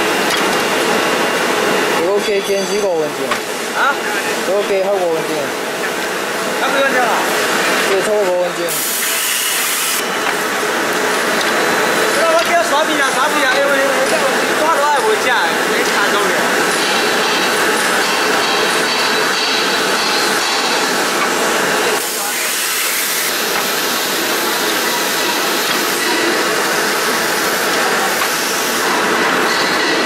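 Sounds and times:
paper machine running: 6.6 - 30.0.

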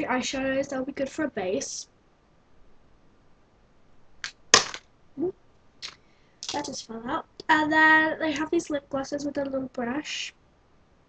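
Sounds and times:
plastic piece clattering: 4.2 - 4.8, 5.8 - 6.8.

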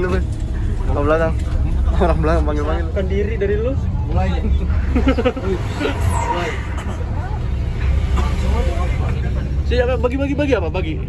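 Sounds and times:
bus engine and road rumble: 0.0 - 11.0
passengers murmuring: 0.0 - 11.0.

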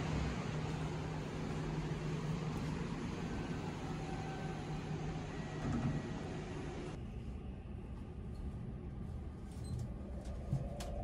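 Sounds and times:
train ventilation hum: 0.0 - 11.0.

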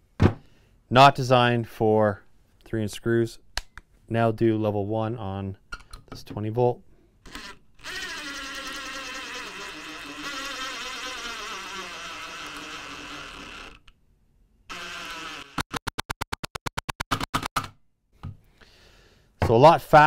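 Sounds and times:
impact driver motor whine: 7.4 - 13.9, 14.7 - 16.2.

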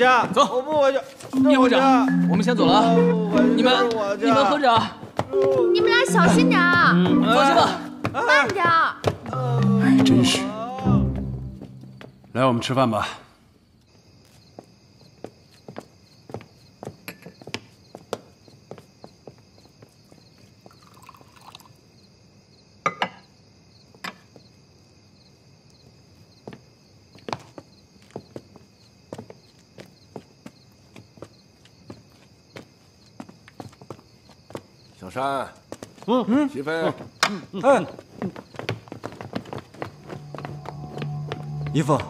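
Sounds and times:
footsteps: 0.0 - 12.4, 36.9 - 42.0
insects chirping: 0.0 - 42.0.

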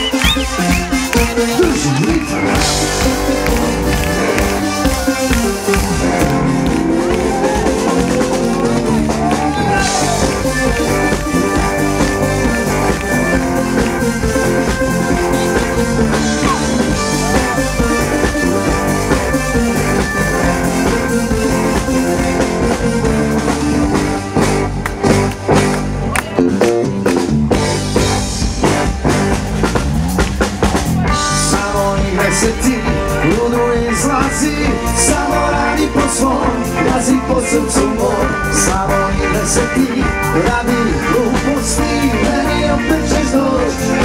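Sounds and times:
bass guitar: 0.0 - 44.0
drum kit: 0.0 - 44.0
electric guitar: 0.0 - 44.0
live rock band playing: 0.0 - 44.0.

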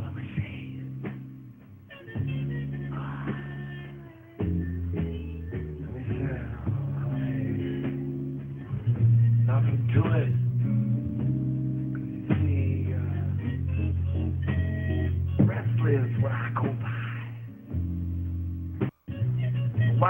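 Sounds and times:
bass notes: 0.0 - 20.0
guitar: 0.0 - 20.0.

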